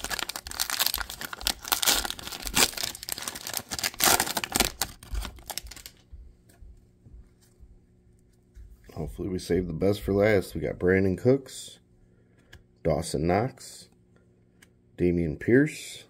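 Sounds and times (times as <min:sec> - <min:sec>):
foil wrapper tearing and crinkling: 0:00.0 - 0:06.0.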